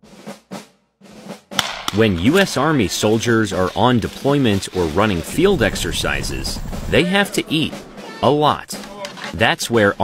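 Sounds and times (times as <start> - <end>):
drum-led music: 0.0 - 10.0.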